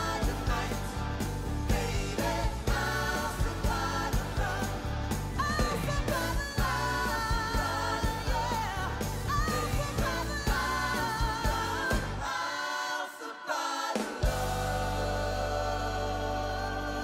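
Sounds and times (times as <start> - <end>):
bass guitar: 0.0 - 12.3, 14.2 - 17.0
drums: 0.0 - 12.5, 13.8 - 17.0
woman singing: 1.7 - 13.8.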